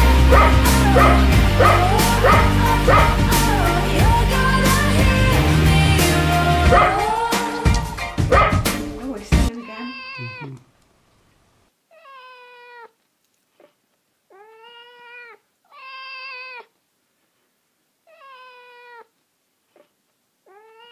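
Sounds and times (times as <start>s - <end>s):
dog howling: 0.0s - 4.2s, 6.6s - 7.4s.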